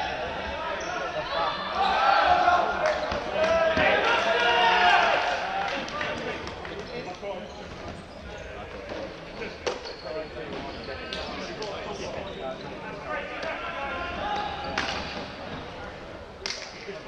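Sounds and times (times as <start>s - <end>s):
players shouting in echoing hall: 0.0s - 6.5s, 12.8s - 15.8s.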